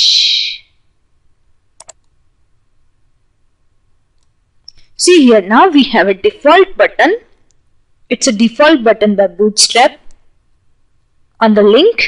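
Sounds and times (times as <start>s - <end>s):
computer mouse double click: 1.8s - 2.1s.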